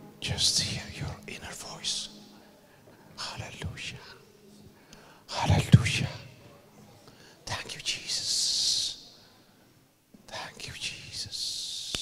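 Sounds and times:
man whispering: 0.2s - 9.2s, 10.3s - 12.0s.

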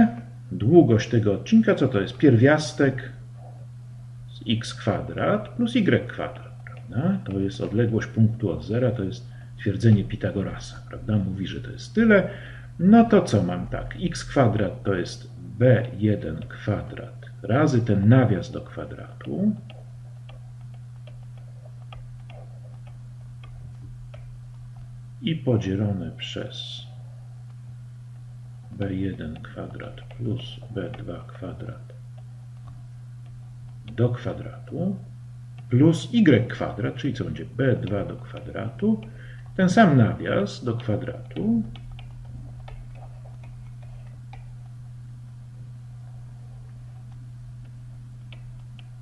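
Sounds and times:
low electrical hum: 0.0s - 49.0s
stylus tapping on tablet: 18.5s - 24.9s, 28.7s - 34.8s, 40.5s - 44.9s, 46.6s - 49.0s.

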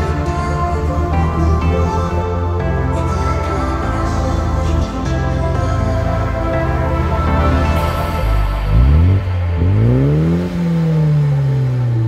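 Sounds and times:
car engine revving: 3.3s - 12.0s.

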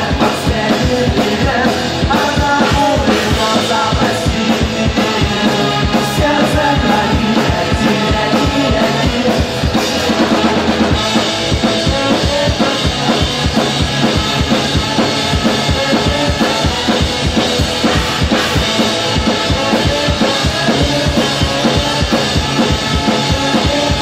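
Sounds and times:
drum kit beat: 0.0s - 24.0s
ska-punk band playing: 0.0s - 24.0s.

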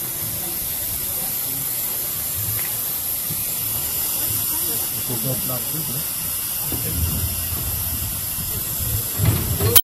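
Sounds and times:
steam locomotive hissing: 0.0s - 9.8s
low rumble: 6.1s - 9.7s.

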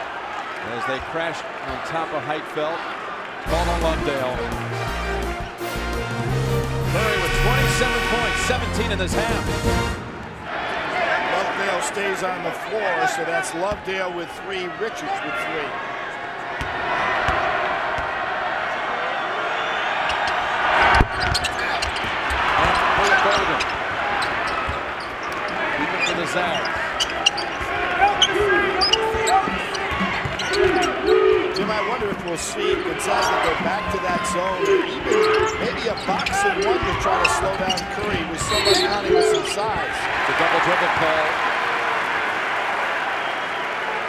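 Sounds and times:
shoes squeaking: 20.1s - 40.0s
basketball bouncing on court: 20.8s - 39.8s.

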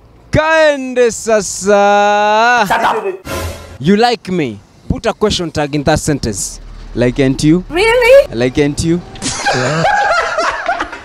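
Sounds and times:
men laughing: 2.6s - 3.2s, 9.2s - 11.0s.

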